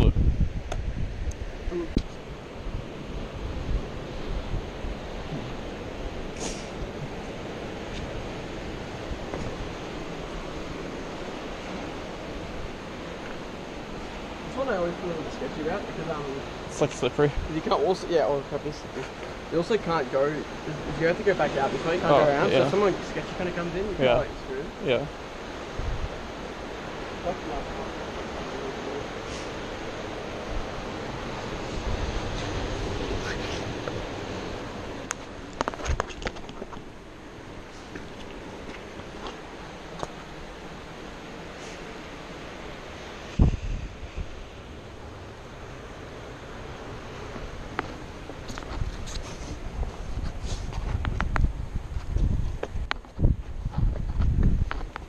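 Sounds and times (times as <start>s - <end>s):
wind buffeting microphone: 0.0s - 55.0s
surf breaking on rocks: 1.6s - 55.0s.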